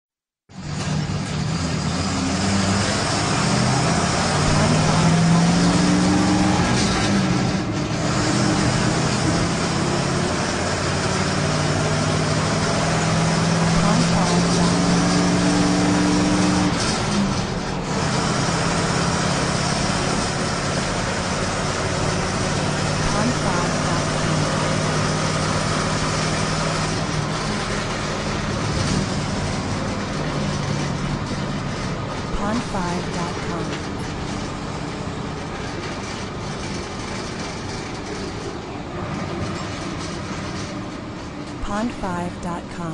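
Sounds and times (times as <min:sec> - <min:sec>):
bus engine droning: 0:00.5 - 0:42.9.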